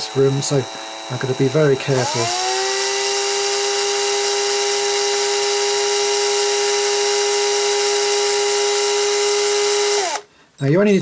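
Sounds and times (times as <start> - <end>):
electric drill whining: 0.0 - 10.3.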